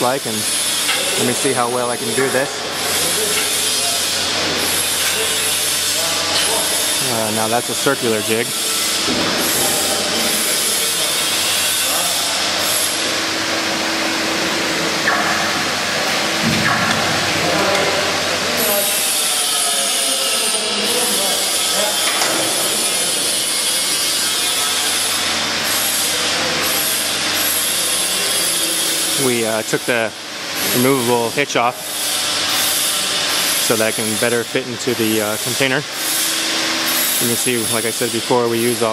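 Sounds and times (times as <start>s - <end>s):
power tool running with whine: 0.2s - 16.4s.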